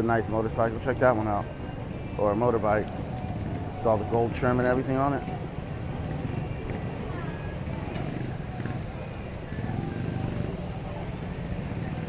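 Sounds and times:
people's voices: 0:00.0 - 0:12.0
motorcycle and scooter engines humming: 0:00.8 - 0:12.0.

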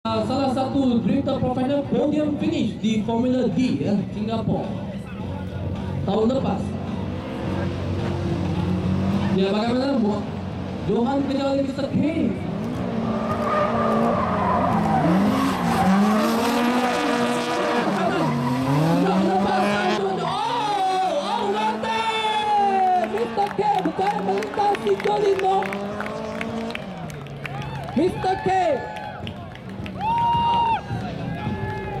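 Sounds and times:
car engines revving: 0:00.1 - 0:28.5.

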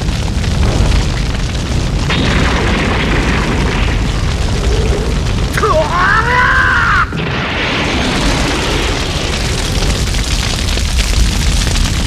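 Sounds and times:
deep rumbling explosion: 0:00.0 - 0:12.0.

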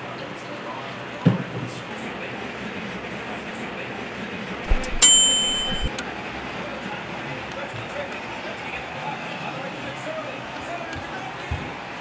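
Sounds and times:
bright bell ding: 0:04.7 - 0:05.9.

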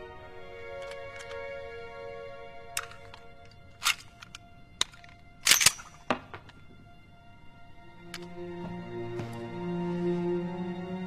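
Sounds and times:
pistol metallic clicks: 0:00.7 - 0:01.6, 0:02.6 - 0:06.6.

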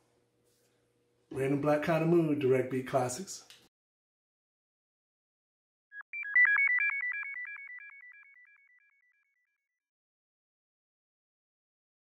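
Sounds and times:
synthesizer logo jingle: 0:05.9 - 0:09.2.

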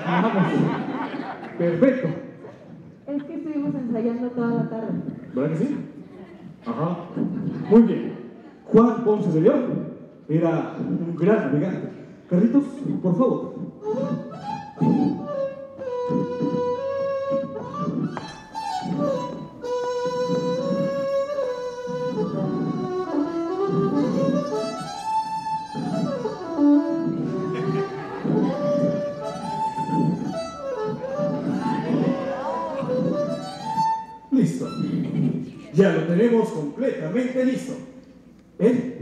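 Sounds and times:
rhythmic pulse: 0:13.1 - 0:35.8
violin playing: 0:13.8 - 0:35.1.

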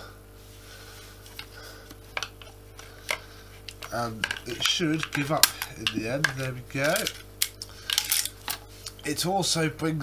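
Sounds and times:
steady low hum: 0:00.0 - 0:10.0
plastic parts clicking: 0:02.2 - 0:08.6.

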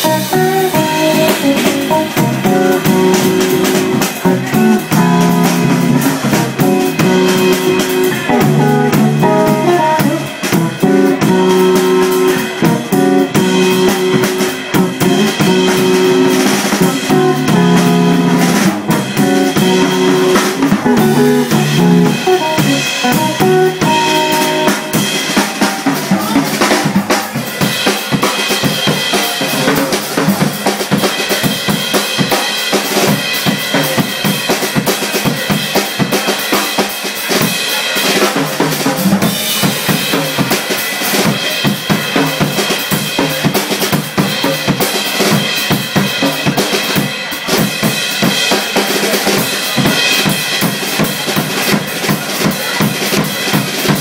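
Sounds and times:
electric guitar line: 0:00.0 - 0:29.2
jazz drum solo: 0:00.0 - 0:54.0.

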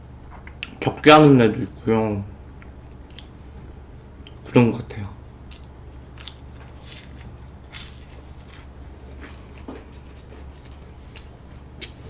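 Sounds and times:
crisp pastry crunches: 0:05.4 - 0:12.0.

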